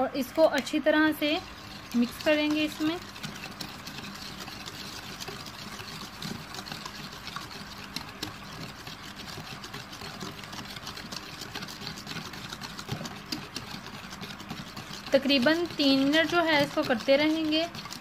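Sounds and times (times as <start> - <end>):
wire whisk beating batter in bowl: 0.0 - 18.0.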